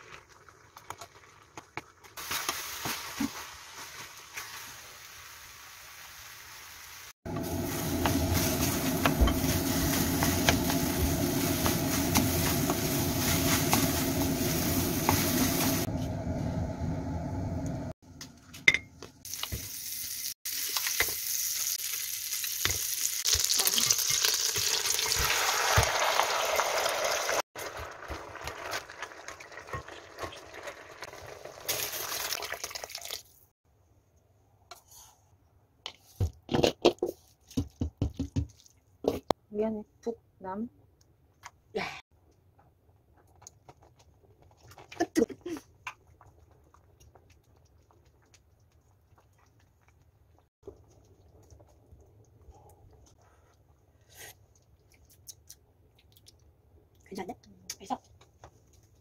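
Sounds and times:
food sizzling in a pan: 2.1 - 15.9, 19.2 - 33.2.

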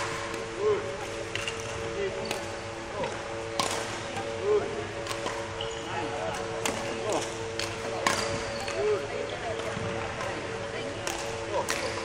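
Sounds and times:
steady hum: 0.0 - 12.0
rackets striking shuttlecocks: 1.3 - 4.4, 5.0 - 5.6, 6.3 - 8.8, 11.0 - 12.0.

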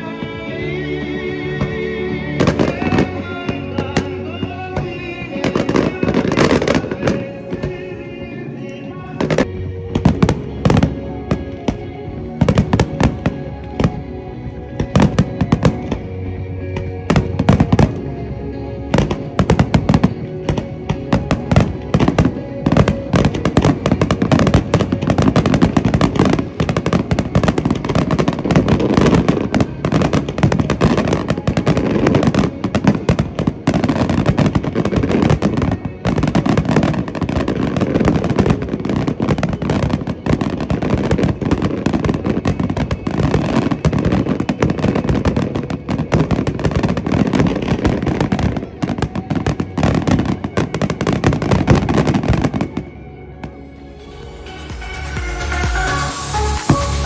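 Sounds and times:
fireworks bangs and crackling: 0.0 - 57.0
music with long held notes: 0.0 - 57.0.

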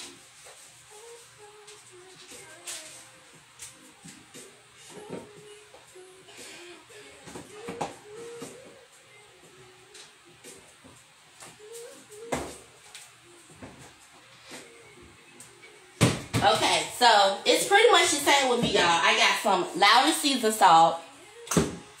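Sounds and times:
faint background music: 0.0 - 22.0
woman's voice: 16.4 - 21.2.

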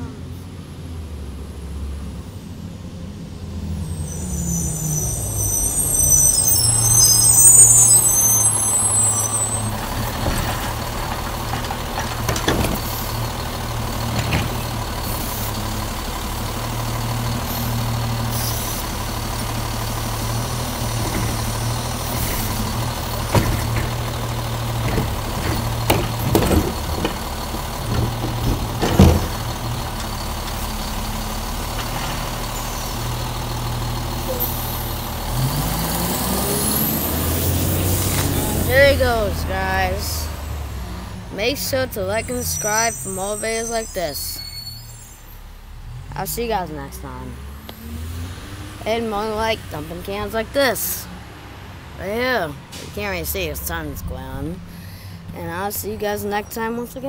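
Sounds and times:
diesel engine running: 0.3 - 57.0
brakes squealing: 2.4 - 57.0
clunks and bangs of cart dumping: 6.6 - 15.6, 19.4 - 32.8.

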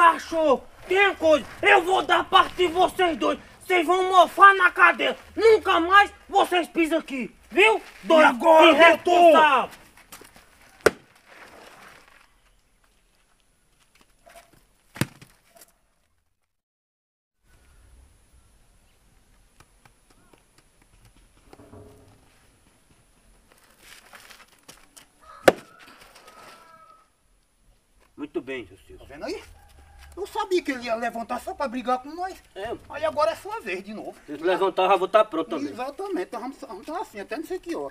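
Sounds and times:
sharp knocks: 25.5 - 25.7.

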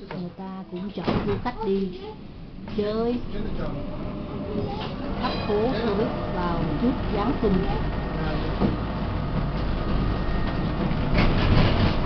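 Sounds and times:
tram rumbling on rails: 0.0 - 12.0.

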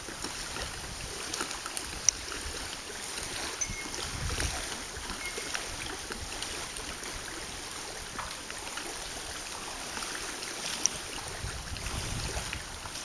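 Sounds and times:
wind rumble on microphone: 0.0 - 9.6, 10.9 - 13.0
light water splashes: 0.0 - 13.0
small waves lapping: 0.0 - 13.0.

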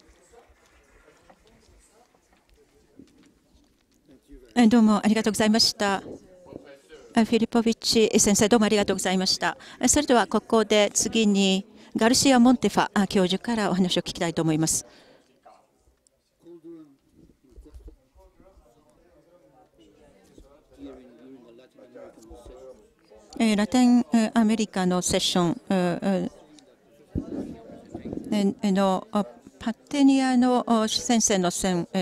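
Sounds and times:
faint muffled voices: 0.0 - 4.6, 5.2 - 8.1, 8.8 - 30.1.

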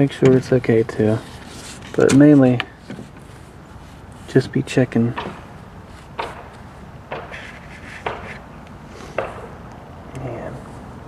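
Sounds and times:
rubber belt rubbing: 7.3 - 8.4.

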